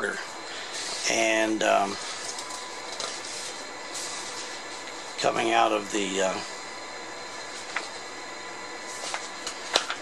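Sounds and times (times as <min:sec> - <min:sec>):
faint high whine: 0:00.0 - 0:10.0
steady hissing noise: 0:00.0 - 0:10.0.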